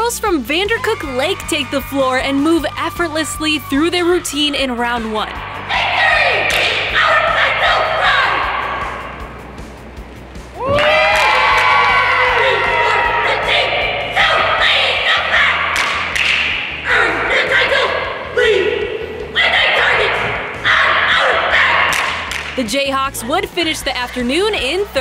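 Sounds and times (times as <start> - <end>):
cheerleaders shouting in unison: 0.7 - 9.3, 10.6 - 16.1, 16.8 - 22.3.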